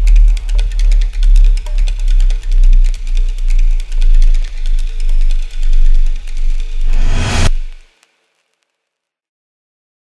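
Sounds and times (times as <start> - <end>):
deep sub-bass pulses: 1.0 - 7.8
loud burst of noise: 6.8 - 7.8.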